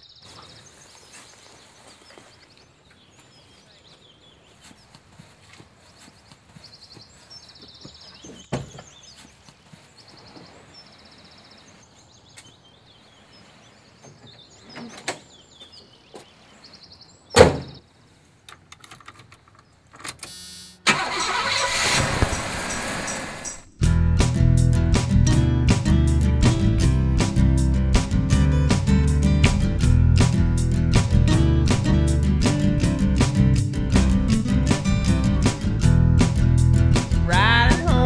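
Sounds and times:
engine starter cranking: 20.1 - 23.7
van engine running: 20.8 - 24.3, 28.4 - 38.0
guitar music: 22.1 - 38.0.

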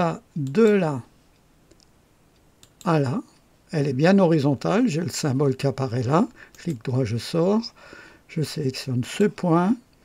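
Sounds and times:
person speaking: 0.0 - 1.9, 2.6 - 10.0
computer mouse clicks: 1.4 - 2.9.

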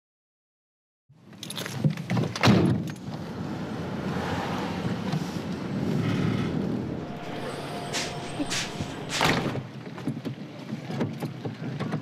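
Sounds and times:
low rumble: 6.3 - 9.7.

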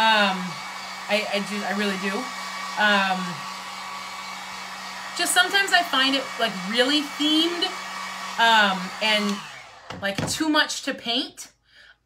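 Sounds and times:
heat gun blowing air: 0.0 - 10.2.

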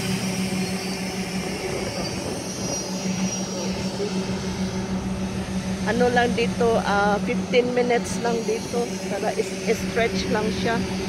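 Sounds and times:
bus engine idling: 0.0 - 11.0.

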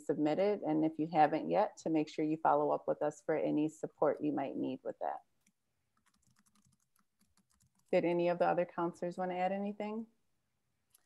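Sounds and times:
typing on computer keyboard: 6.0 - 8.0.

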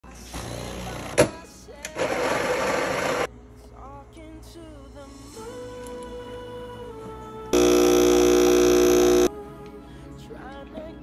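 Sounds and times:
coffee grinder whirring: 7.6 - 9.3.

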